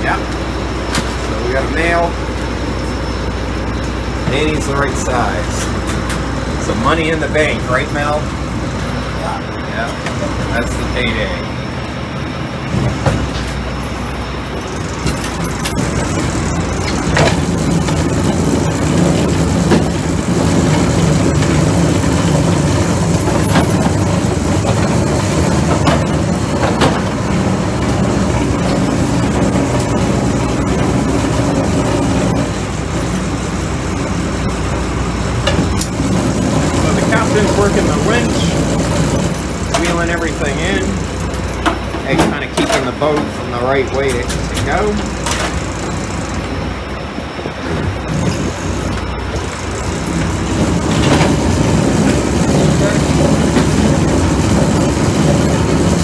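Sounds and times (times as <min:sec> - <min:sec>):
boat engine running: 0:00.0 - 0:56.0
gear knocking and clattering: 0:12.7 - 0:56.0
indistinct voices: 0:14.6 - 0:46.6.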